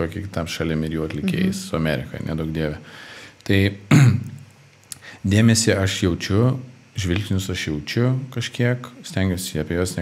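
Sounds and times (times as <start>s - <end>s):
man clearing his throat: 3.9s - 4.4s.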